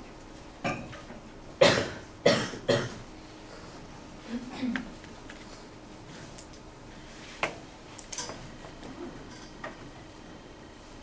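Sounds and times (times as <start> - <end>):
person coughing: 1.6 - 3.0, 4.3 - 4.8.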